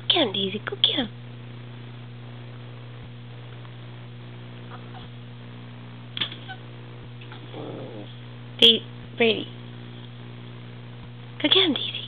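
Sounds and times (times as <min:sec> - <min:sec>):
steady electrical hum: 0:00.0 - 0:12.0
small dog whining: 0:07.3 - 0:08.1.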